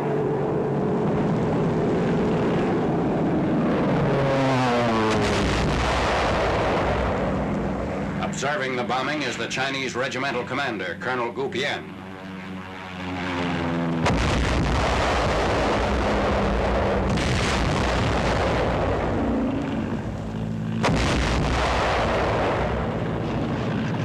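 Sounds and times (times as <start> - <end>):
bomb explosions rumbling: 0.0 - 10.4, 14.0 - 24.0.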